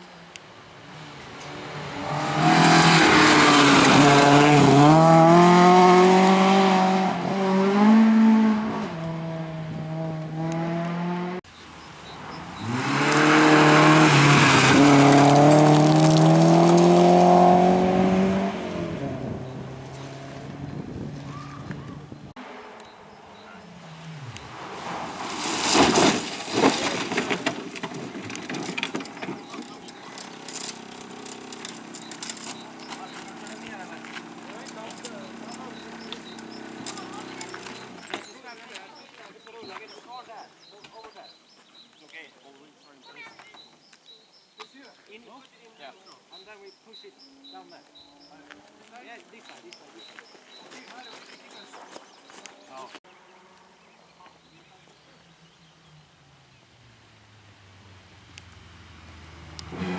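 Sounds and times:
rally car engines revving high: 0.8s - 11.4s, 12.0s - 25.4s, 28.7s - 38.3s, 57.4s - 59.9s
tyres spraying gravel: 12.2s - 17.6s, 23.4s - 41.3s
stones and dirt crackling: 13.0s - 17.5s, 24.6s - 40.0s.

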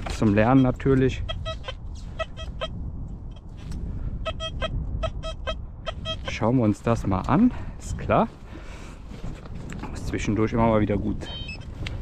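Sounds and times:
wind rumble on microphone: 0.0s - 12.0s
metal detector short beeps: 4.3s - 6.4s, 11.3s - 11.7s.

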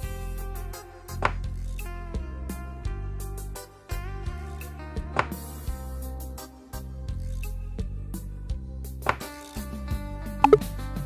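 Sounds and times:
background music with plucked strings: 0.0s - 7.6s.

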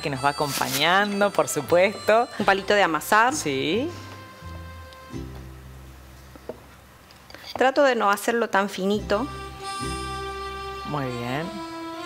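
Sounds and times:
plucked string instrument music: 9.0s - 12.0s.

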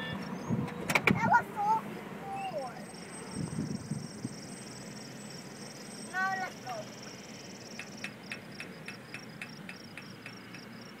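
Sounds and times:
insects trilling: 2.7s - 11.0s
sharp ticks: 5.7s - 11.0s.

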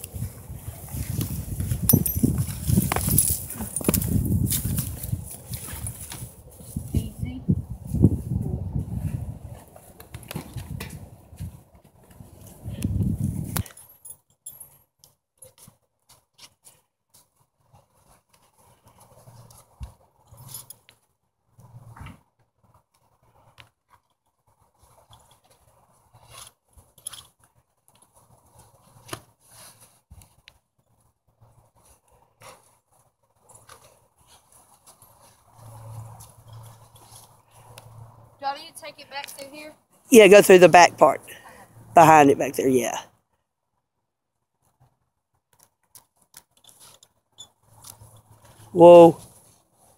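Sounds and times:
saddle tack clicks and rustles: 0.0s - 6.7s, 13.4s - 38.2s, 44.6s - 49.9s
horse shuffling: 0.0s - 7.1s, 21.6s - 38.4s.

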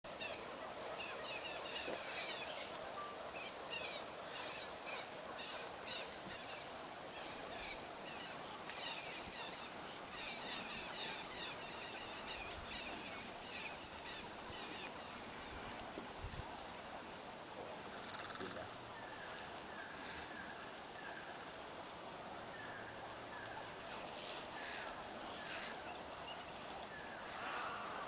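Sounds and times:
birds chirping: 0.1s - 15.6s.

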